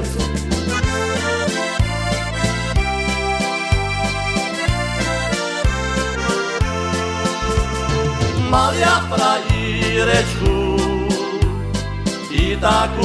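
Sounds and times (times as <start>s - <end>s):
accordion playing melody: 0.0s - 13.0s
programmed bass and drums: 0.0s - 13.0s.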